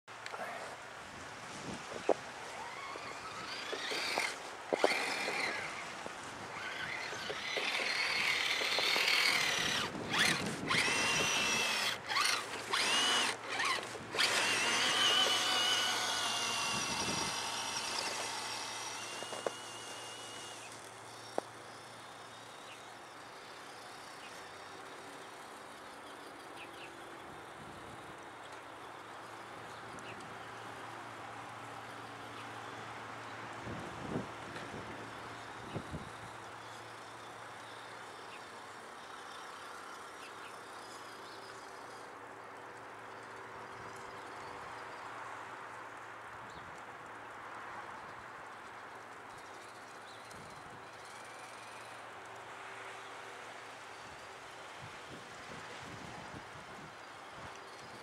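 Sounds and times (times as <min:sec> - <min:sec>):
toy car electric motor whining: 0:02.0 - 0:28.2, 0:33.7 - 0:42.2, 0:49.3 - 0:52.6.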